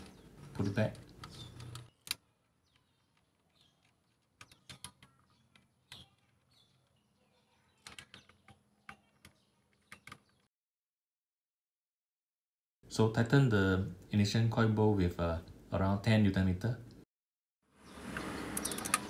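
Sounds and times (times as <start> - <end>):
plastic parts clicking and tapping: 0.0 - 7.0, 7.8 - 10.5.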